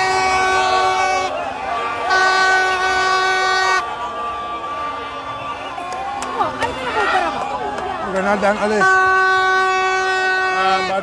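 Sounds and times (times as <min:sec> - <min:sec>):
vehicle horn blasts: 0:00.0 - 0:01.4, 0:02.0 - 0:03.9, 0:08.8 - 0:11.0
crowd noise: 0:00.0 - 0:11.0.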